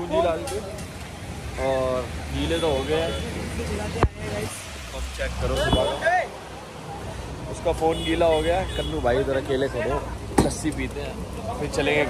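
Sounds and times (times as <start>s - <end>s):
low street rumble: 0.0s - 12.0s
people talking: 1.6s - 12.0s.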